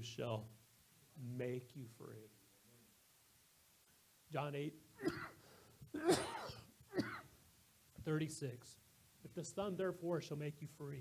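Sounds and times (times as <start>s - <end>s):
man clearing his throat: 5.0s - 7.3s.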